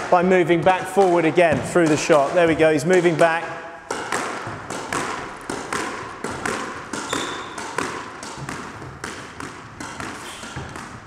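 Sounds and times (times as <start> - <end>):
squash ball hitting wall: 0.0 - 11.0
squash racket strikes: 0.0 - 11.0.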